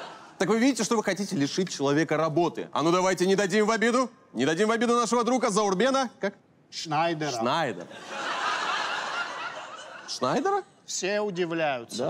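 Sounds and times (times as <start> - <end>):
audience laughing: 0.0 - 0.4, 7.9 - 10.4.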